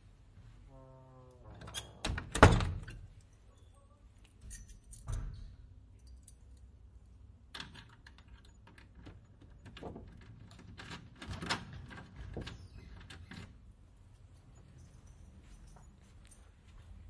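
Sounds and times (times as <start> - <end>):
door thudding shut: 2.0 - 2.9.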